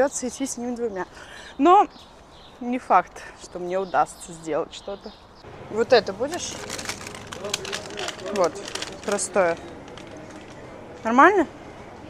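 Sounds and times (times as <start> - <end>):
woman speaking: 0.0 - 1.9, 2.6 - 6.8, 8.2 - 9.6, 11.0 - 11.5
plastic wrappers crinkling: 6.2 - 10.6.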